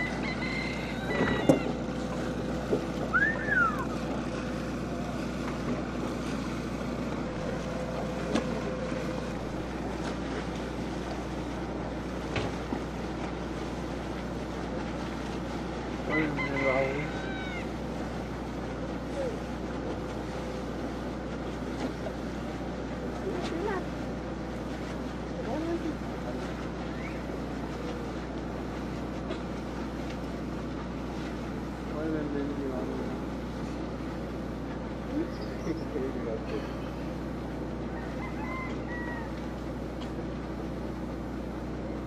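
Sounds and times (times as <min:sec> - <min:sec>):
distant calls: 0:00.0 - 0:01.9, 0:03.0 - 0:04.1, 0:16.0 - 0:17.8, 0:26.9 - 0:27.4, 0:35.1 - 0:36.1, 0:37.8 - 0:39.6
boat motor running: 0:00.0 - 0:42.0.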